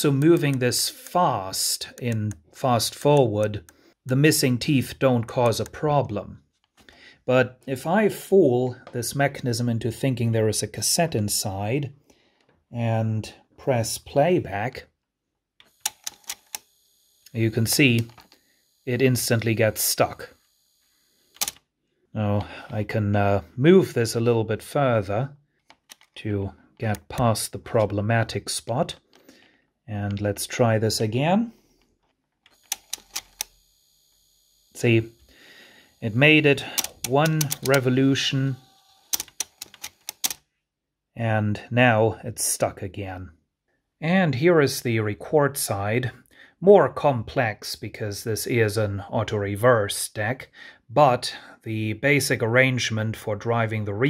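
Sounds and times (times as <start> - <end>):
cassette deck reel clicking: 15.6 - 18.5, 32.5 - 33.6, 36.6 - 37.9, 38.5 - 40.4
faint motor hum: 32.6 - 37.6, 38.4 - 39.2.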